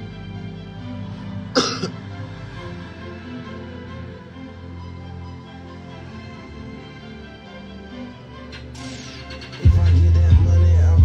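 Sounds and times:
person coughing: 0:01.6 - 0:01.9
rap song in background: 0:07.9 - 0:11.0.

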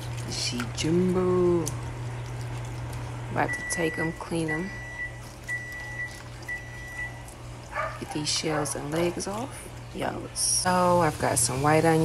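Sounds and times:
high steady beeps: 0:03.5 - 0:07.2.

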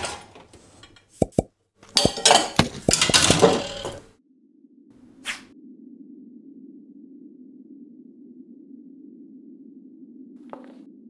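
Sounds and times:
objects tumbling and crashing: 0:01.8 - 0:04.2
chair falling over: 0:01.9 - 0:04.1.

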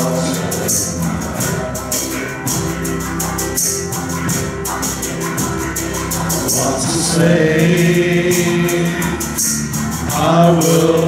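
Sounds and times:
bass guitar: 0:00.0 - 0:11.0
drum kit: 0:00.0 - 0:11.0
electric guitar: 0:00.0 - 0:11.0.

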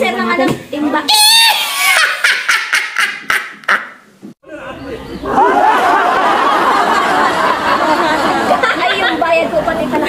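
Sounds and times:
woman laughing: 0:01.2 - 0:03.9.

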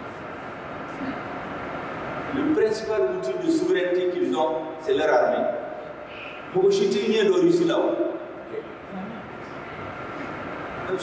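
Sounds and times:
faint hum: 0:00.0 - 0:11.0
rumble and hiss: 0:00.0 - 0:11.0.

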